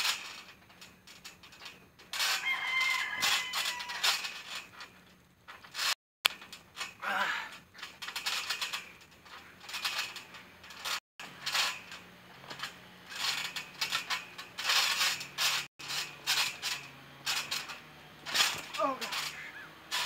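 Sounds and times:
trampoline springs squeaking: 0.0s - 20.0s.

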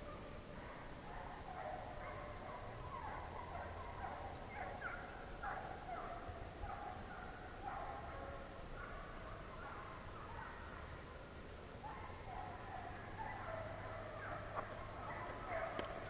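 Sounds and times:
hounds baying: 0.0s - 16.0s.

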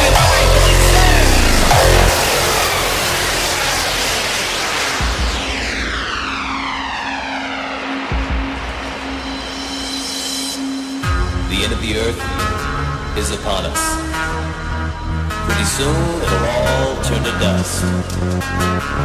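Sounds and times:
vocal: 0.0s - 2.6s, 15.4s - 18.3s
deep bass hits: 0.0s - 6.3s, 11.0s - 16.0s
whooshing noise sweeps: 0.0s - 15.6s.

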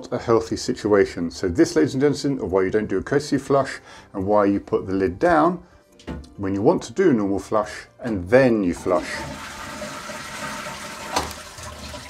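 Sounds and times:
toilet flushing: 8.7s - 12.0s.

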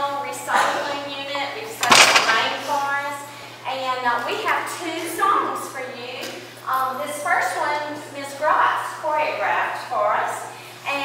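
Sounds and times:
sharp knock: 1.8s - 2.7s.

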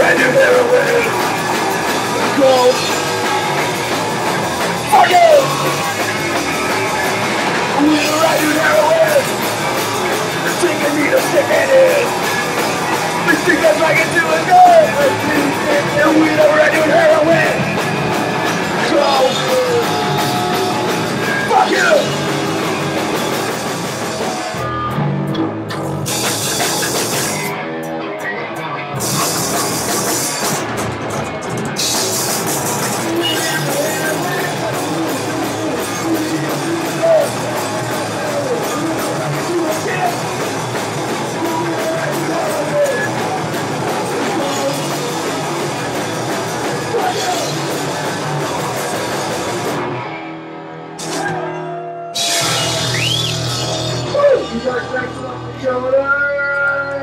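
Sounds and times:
drum kit: 0.0s - 50.1s, 50.8s - 51.6s, 52.2s - 57.0s
electric guitars: 0.0s - 57.0s
punk rock band playing live: 0.0s - 57.0s.

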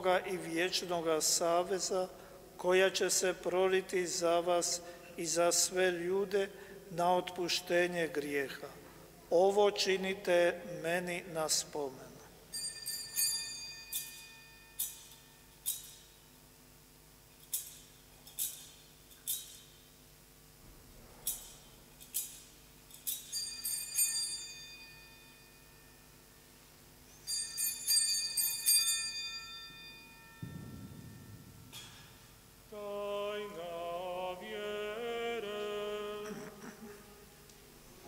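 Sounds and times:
small bells ringing: 12.5s - 16.1s, 21.3s - 26.1s, 27.2s - 31.4s.

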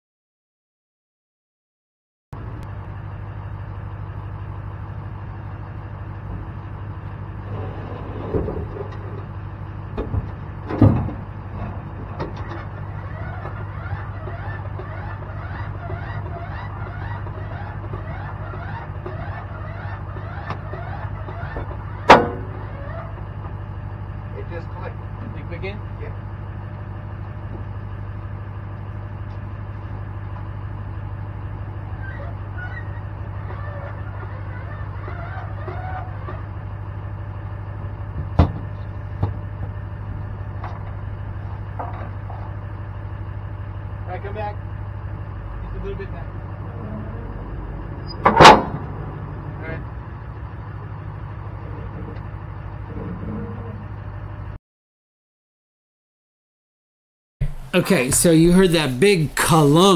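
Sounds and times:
truck engine idling: 2.4s - 54.6s
hitch lock metallic clunk: 48.1s - 49.0s.

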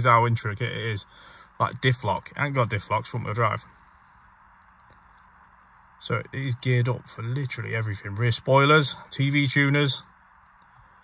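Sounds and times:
faint background hiss and hum: 0.0s - 11.0s.

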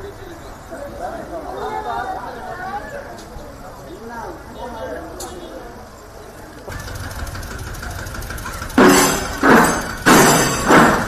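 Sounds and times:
engine humming: 6.5s - 11.0s
loud rough bursts of noise: 6.7s - 11.0s.

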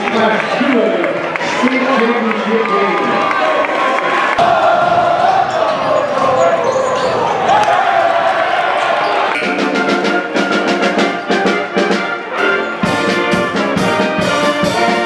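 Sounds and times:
crowd voices in a gymnasium: 0.0s - 13.3s
pep band with brass and drums: 9.2s - 15.0s.

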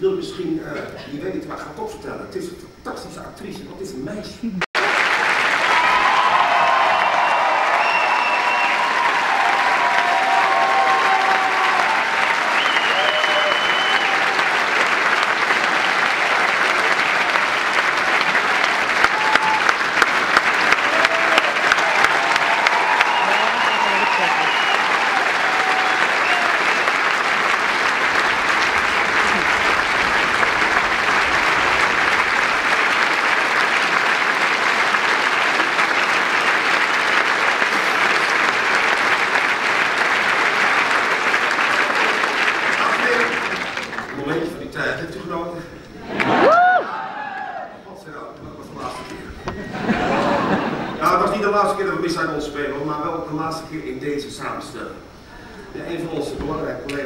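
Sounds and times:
voices cheering: 4.8s - 43.9s, 46.1s - 47.8s
audience applauding: 4.8s - 45.3s, 46.0s - 47.7s.

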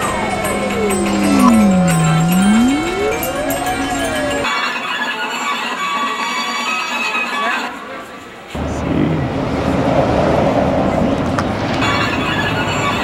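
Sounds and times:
gliding electronic tone: 0.0s - 4.5s
steady held electronic tones: 0.0s - 4.5s.

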